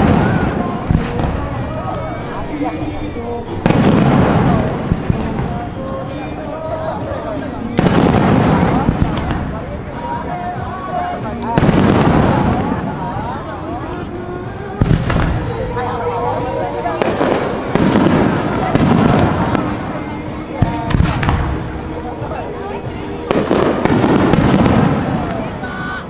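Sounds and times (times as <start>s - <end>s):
firework shells booming: 3.6s - 5.8s, 7.7s - 9.6s, 11.6s - 12.9s, 14.8s - 15.6s, 17.0s - 20.0s, 20.6s - 21.8s, 23.2s - 25.6s.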